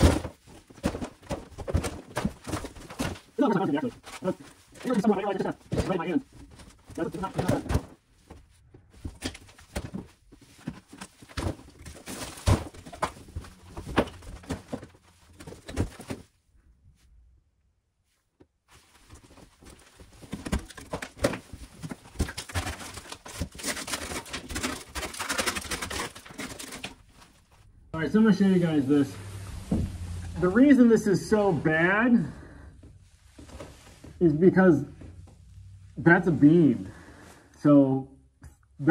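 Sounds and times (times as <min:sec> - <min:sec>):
plaster and wood crumbling: 0:00.0 - 0:16.4, 0:18.8 - 0:27.7.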